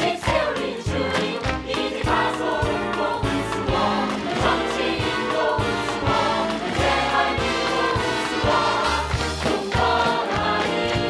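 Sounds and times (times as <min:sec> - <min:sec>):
chorus singing show tune: 0:00.0 - 0:11.0
orchestral accompaniment: 0:00.0 - 0:11.0.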